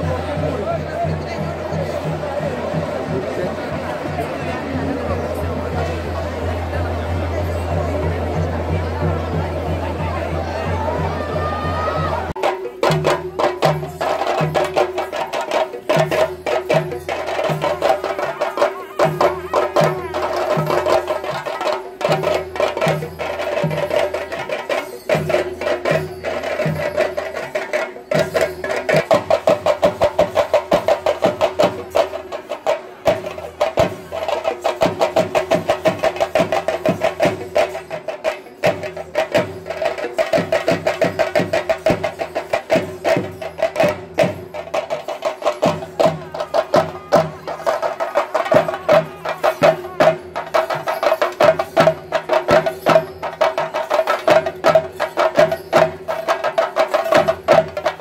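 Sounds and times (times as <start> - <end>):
drums beaten in rolling strokes: 0.0 - 58.0.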